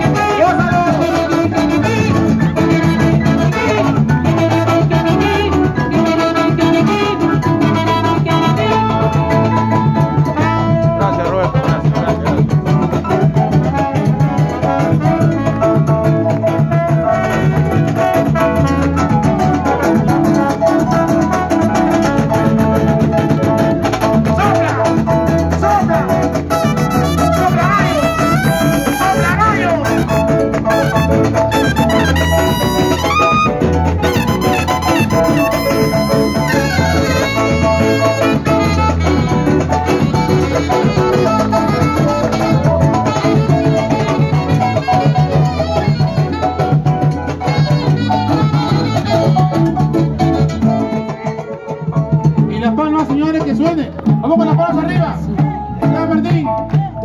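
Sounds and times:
live salsa band with brass: 0.0 - 57.0.

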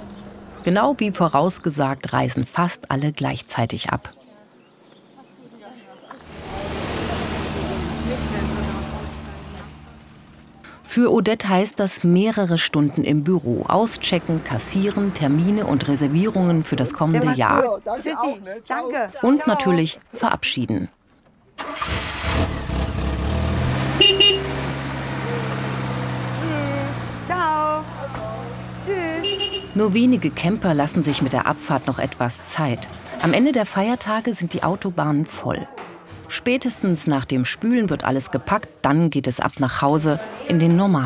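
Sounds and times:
voices calling out: 0.0 - 20.7, 23.9 - 41.0
tyres rolling: 6.1 - 10.6, 21.0 - 38.8
van engine idling: 6.2 - 10.9
camper van engine: 6.2 - 11.5, 13.2 - 17.6, 21.6 - 34.9
short horn toots: 24.0 - 24.6, 29.2 - 29.8.

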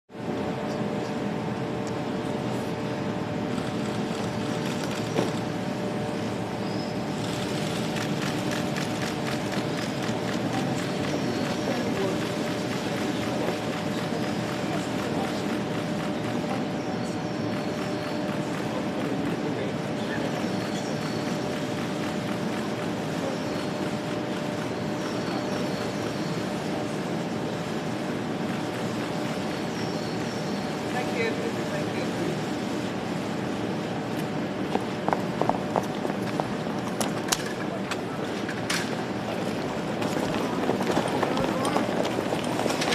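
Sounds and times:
street noise: 0.1 - 42.9.

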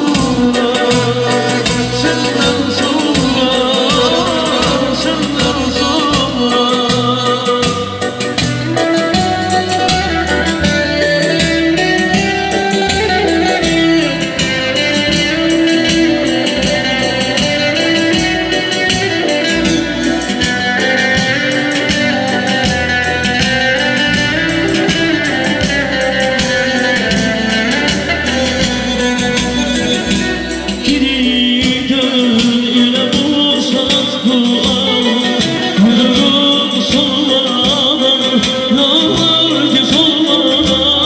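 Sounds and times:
electric guitar melody: 0.0 - 41.0
hand drum beat: 0.0 - 41.0
keyboard accompaniment: 0.0 - 41.0.

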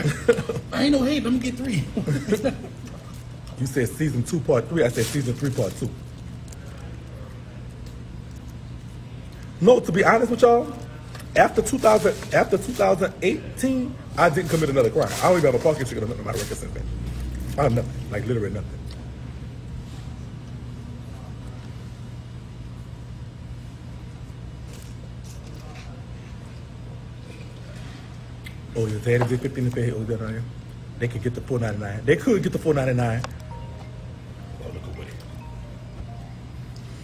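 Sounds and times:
restaurant background hum: 0.0 - 37.0.

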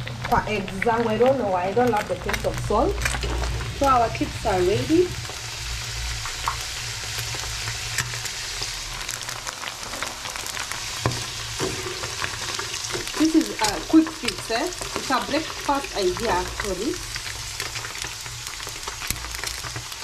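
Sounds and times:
chips sizzling in hot oil: 0.0 - 20.0.

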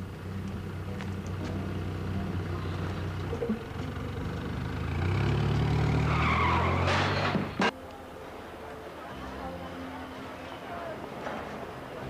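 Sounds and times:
car engine idling: 0.0 - 6.6.

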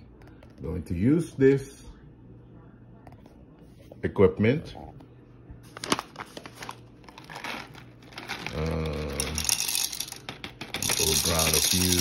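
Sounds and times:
foil bag crinkling: 5.7 - 10.1, 10.8 - 12.0
coffee grinder grinding beans: 7.1 - 12.0.

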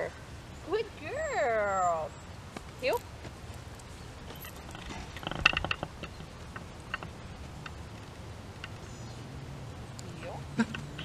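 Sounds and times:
metallic clinks of leash hardware: 4.3 - 5.4.

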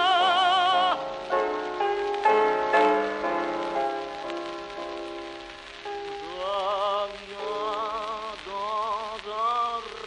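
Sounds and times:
old recorded song: 0.0 - 10.0
record surface crackle: 0.0 - 10.0.

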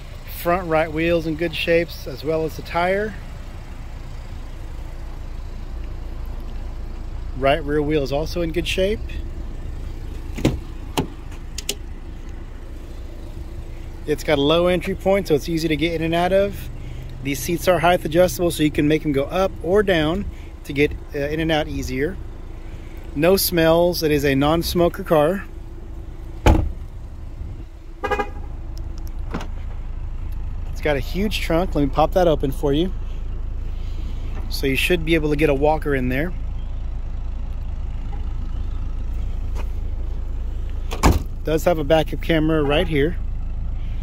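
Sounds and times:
car door shutting: 10.2 - 11.8, 26.4 - 26.9, 29.2 - 29.8, 40.8 - 41.4
car door handle and latch clicks: 10.3 - 11.8
car horn toot: 28.0 - 28.5, 42.5 - 43.1.

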